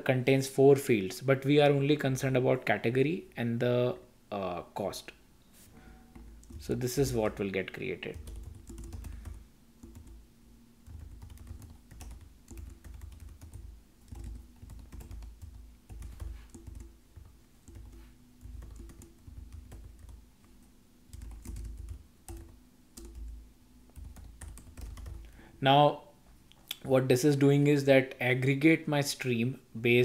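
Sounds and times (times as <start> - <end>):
computer keyboard typing: 6.1 - 7.4, 8.1 - 10.2, 10.8 - 25.3.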